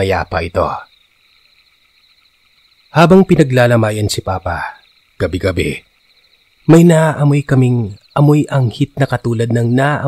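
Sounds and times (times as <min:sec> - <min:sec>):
faint high-pitched chirring: 0:00.0 - 0:10.0.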